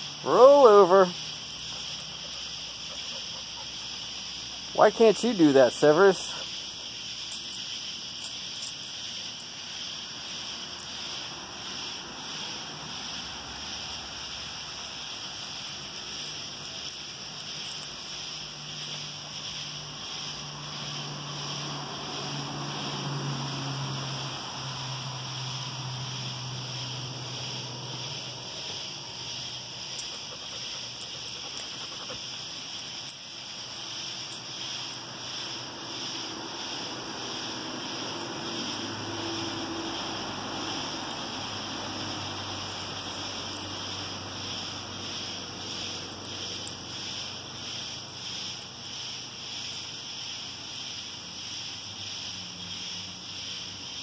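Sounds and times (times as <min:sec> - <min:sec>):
night insects trilling: 0:00.0 - 0:54.0.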